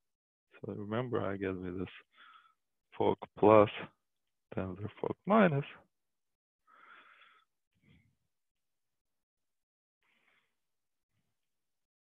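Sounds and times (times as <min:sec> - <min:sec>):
faint breath: 0:02.0 - 0:02.6, 0:06.6 - 0:08.3, 0:10.0 - 0:11.4.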